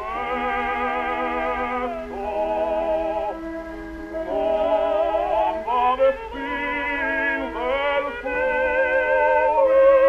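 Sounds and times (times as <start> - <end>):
operatic duet singing: 0.0 - 3.5, 4.2 - 10.0
record surface noise rumble: 0.0 - 10.0.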